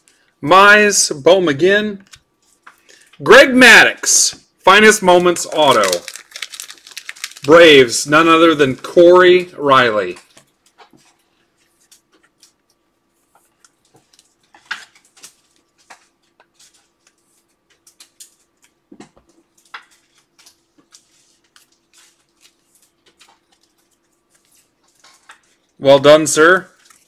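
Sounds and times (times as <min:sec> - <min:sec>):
faint steady hum: 0:00.0 - 0:27.0
trading cards clicking and rustling: 0:05.1 - 0:07.6, 0:13.4 - 0:25.7.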